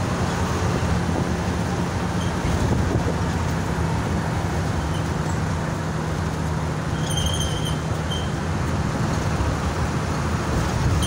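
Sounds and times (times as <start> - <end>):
bus engine and road drone: 0.0 - 11.0.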